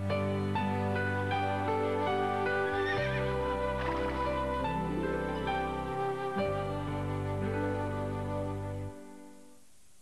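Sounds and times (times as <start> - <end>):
background music sustained notes: 0.0 - 9.6
horse whinnying: 2.6 - 4.6.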